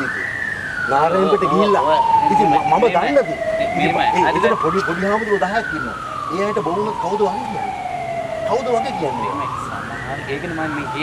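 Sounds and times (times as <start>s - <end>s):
men talking: 0.0s - 11.0s
wailing siren: 0.0s - 11.0s.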